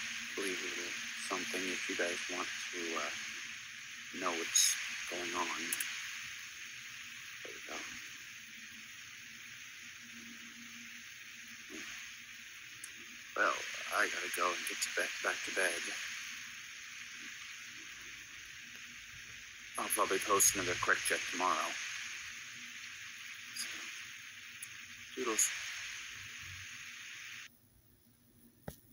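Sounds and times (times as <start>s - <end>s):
microphone background hiss: 0.0s - 28.9s.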